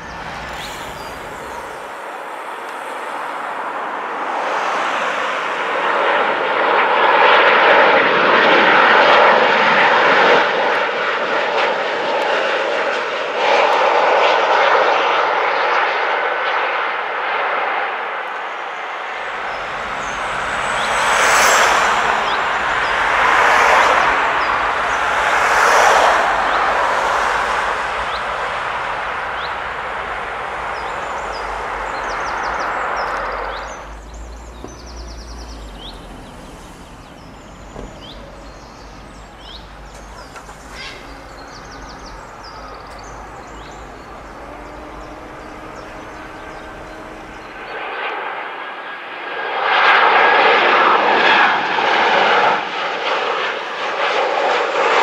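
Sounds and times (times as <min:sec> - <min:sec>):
jet airliner passing: 0:00.0 - 0:55.0
jet engine on runway: 0:00.0 - 0:55.0
wind rumbling on microphone: 0:19.0 - 0:47.9.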